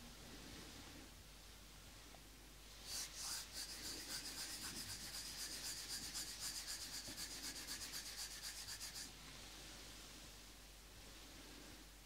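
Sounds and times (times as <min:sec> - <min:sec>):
palms rubbing together: 0:02.8 - 0:09.1.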